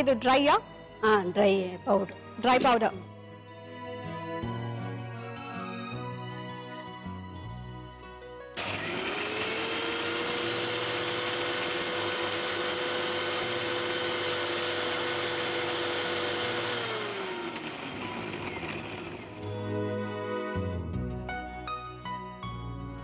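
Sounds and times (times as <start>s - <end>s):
mixer grinder motor whining: 8.6s - 19.7s.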